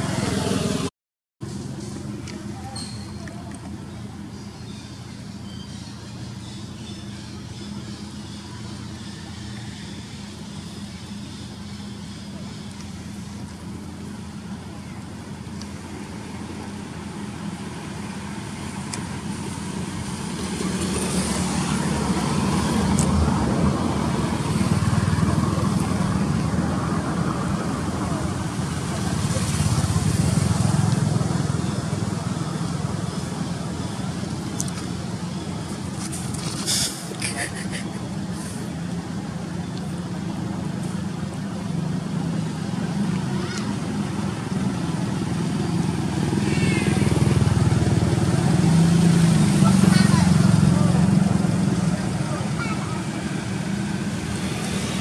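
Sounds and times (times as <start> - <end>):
traffic rumble: 0.0 - 55.0
vehicles passing: 0.0 - 55.0.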